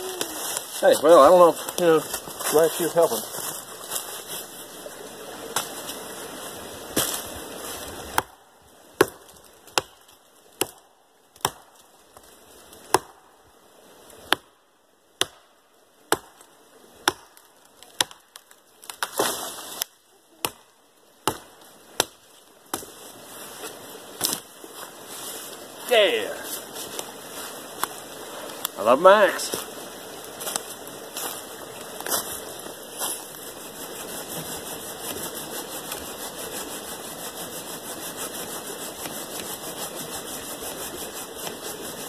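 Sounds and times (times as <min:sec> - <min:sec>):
hatchet chopping wood: 0:08.1 - 0:08.4, 0:09.0 - 0:10.8, 0:11.4 - 0:11.8, 0:12.8 - 0:13.2, 0:14.3 - 0:14.6, 0:15.2 - 0:15.5, 0:16.1 - 0:16.4, 0:17.0 - 0:19.3, 0:20.4 - 0:23.0.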